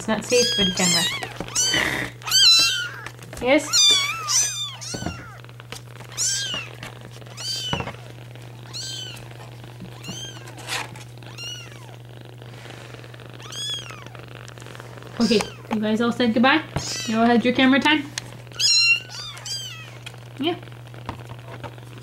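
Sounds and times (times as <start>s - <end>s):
kittens mewing: 0.2s - 12.1s, 12.9s - 15.8s, 16.7s - 17.4s, 18.4s - 20.4s.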